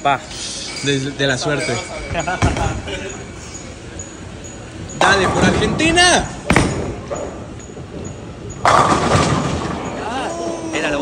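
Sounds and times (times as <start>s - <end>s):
bowling ball rolling rumble: 5.1s - 10.0s.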